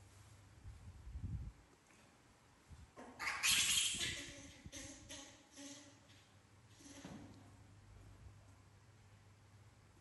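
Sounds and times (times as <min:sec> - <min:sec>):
baby monkey screeching: 0:03.2 - 0:05.8.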